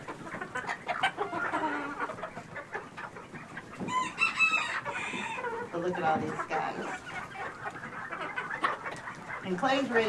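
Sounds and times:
chickens clucking softly: 0.0s - 10.0s
beaks pecking at floor: 0.2s - 10.0s.

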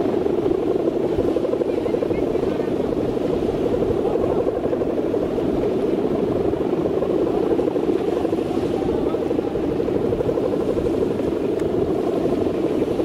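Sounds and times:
kite hummer droning in wind: 0.0s - 13.0s.

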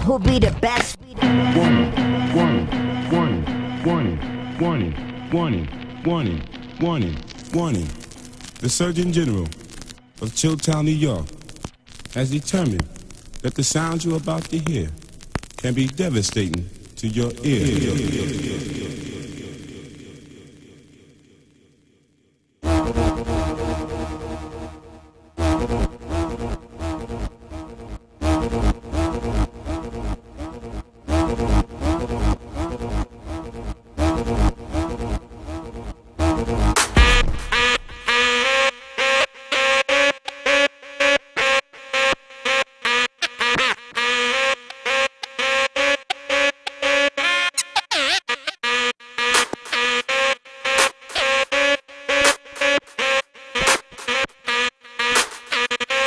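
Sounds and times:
turntable scratching: 0.0s - 20.6s, 22.6s - 24.7s, 25.4s - 56.0s
low droning tone chopped: 1.2s - 21.9s, 22.6s - 38.5s.

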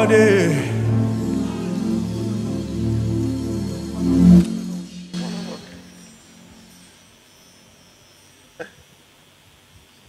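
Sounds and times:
music: 0.0s - 8.4s.

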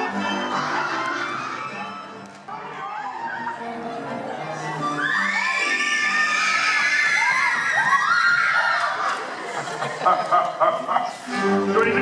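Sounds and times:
pit orchestra music: 11.2s - 12.0s.

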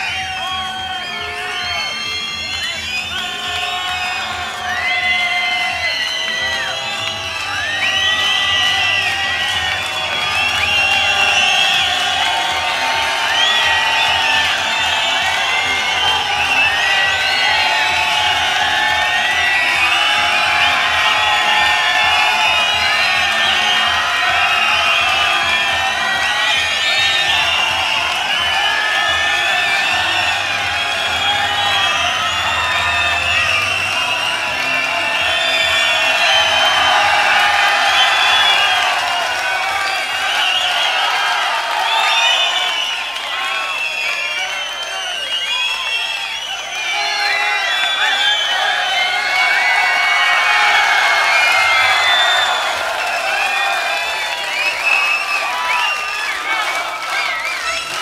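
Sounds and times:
audience whistling: 0.0s - 58.0s
concert audience cheering: 0.0s - 58.0s.

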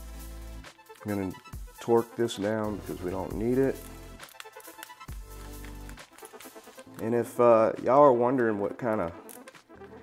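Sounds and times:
quiet electronic music: 0.0s - 10.0s.

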